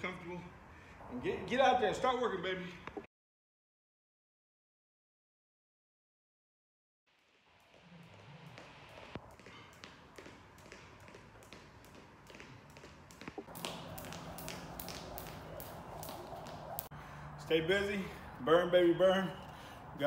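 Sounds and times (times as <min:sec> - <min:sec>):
jump rope slapping concrete: 0:07.7 - 0:16.9.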